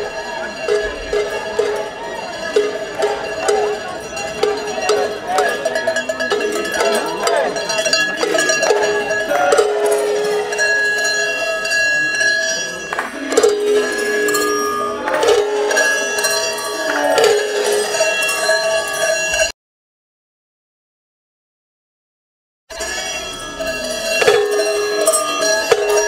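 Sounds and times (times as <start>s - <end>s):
large cowbells clanging: 0.0s - 19.5s, 22.7s - 26.0s.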